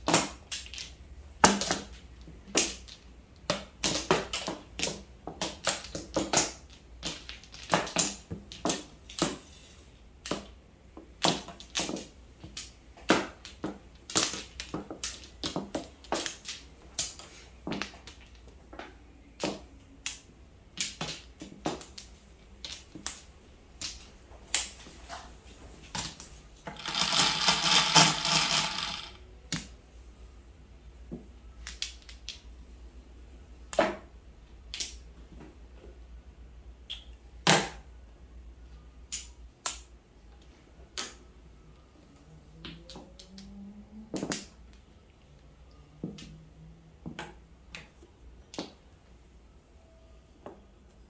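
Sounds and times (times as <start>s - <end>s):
mahjong tiles clacking on table: 0.0s - 9.4s, 10.2s - 24.7s, 26.0s - 29.7s.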